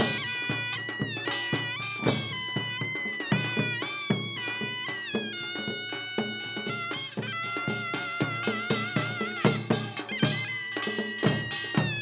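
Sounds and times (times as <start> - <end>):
drum strokes: 0.0 - 12.0
shawm playing high note: 0.0 - 12.0.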